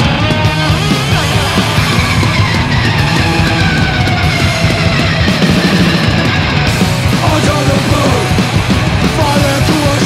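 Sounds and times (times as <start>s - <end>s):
hardcore punk music: 0.0s - 10.0s.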